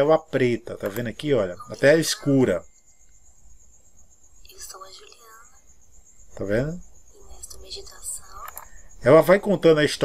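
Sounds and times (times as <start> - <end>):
woman softly narrating a story: 4.5 - 5.6, 7.2 - 8.5.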